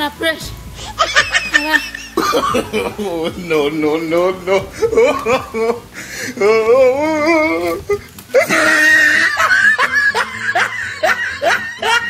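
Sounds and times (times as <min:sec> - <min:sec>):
person laughing: 0:00.8 - 0:12.0.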